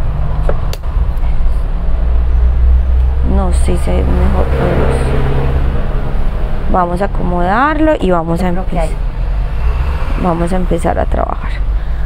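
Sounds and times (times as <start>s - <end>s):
steady low rumble: 0.0s - 9.6s.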